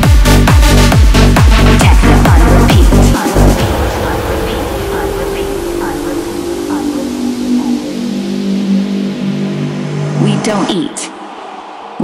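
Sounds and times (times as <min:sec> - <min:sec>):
deep kick and bass: 0:00.0 - 0:10.2.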